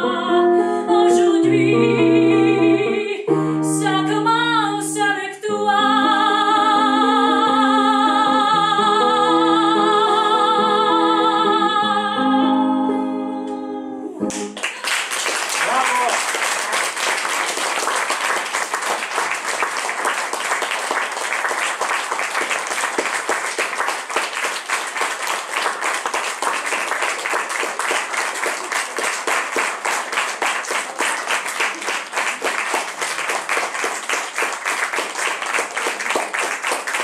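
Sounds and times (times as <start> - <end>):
audience applauding: 14.3 - 37.0
person calling out: 15.6 - 16.2.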